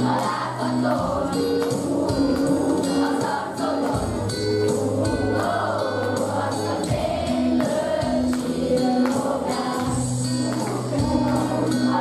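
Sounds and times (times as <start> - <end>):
children's choir singing: 0.0 - 12.0
instrumental accompaniment with beat: 0.0 - 12.0.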